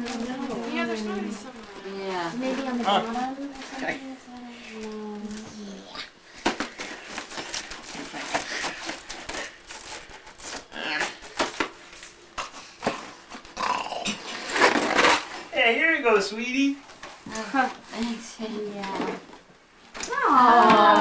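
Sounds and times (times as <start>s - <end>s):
wrapping paper ripping: 7.0s - 12.1s.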